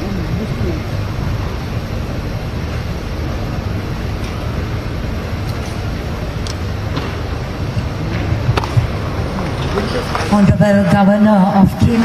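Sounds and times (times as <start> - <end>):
low rumbling venue noise: 0.0 - 12.0.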